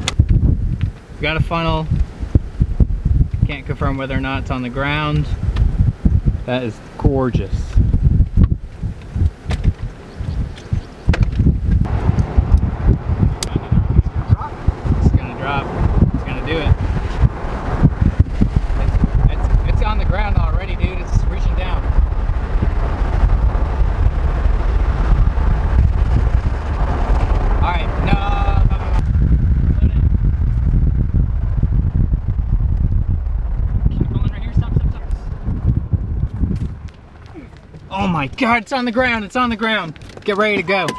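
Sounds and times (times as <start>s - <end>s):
wind buffeting microphone: 0.0s - 40.9s
voices: 13.2s - 16.9s, 18.7s - 21.9s, 27.6s - 29.0s, 37.3s - 40.9s.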